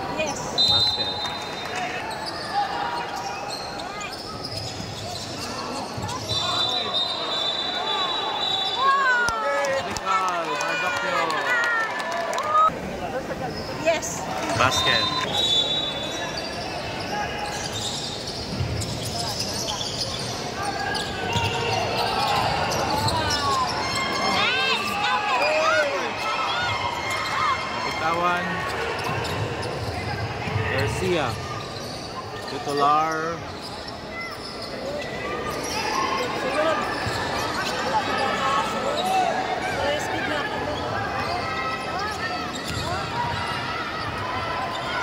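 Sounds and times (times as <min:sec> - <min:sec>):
crowd chatter: 0:00.0 - 0:45.0
sneakers squeaking: 0:00.2 - 0:09.0, 0:13.5 - 0:45.0.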